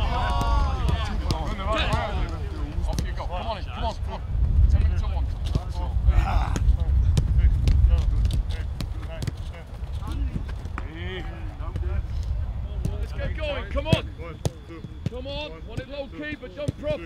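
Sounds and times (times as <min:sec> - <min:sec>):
distant shouts from players: 0:00.0 - 0:02.4
football kicks and bounces: 0:00.2 - 0:03.2, 0:05.4 - 0:05.8, 0:06.5 - 0:11.0
wind rumble on microphone: 0:02.0 - 0:14.1.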